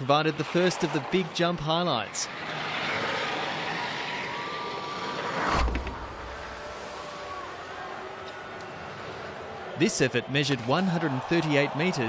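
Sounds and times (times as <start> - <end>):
loud whoosh with low rumble: 4.9 - 6.7.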